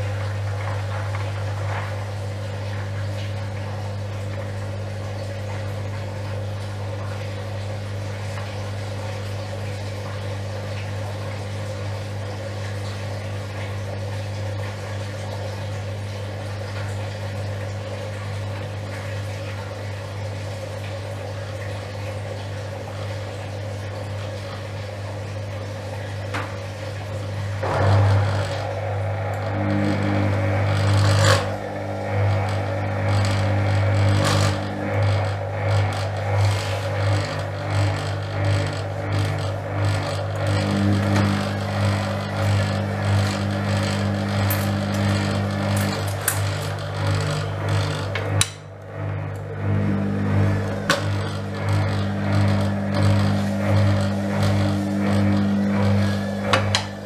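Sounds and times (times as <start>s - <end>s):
washing machine spinning: 0.0s - 57.0s.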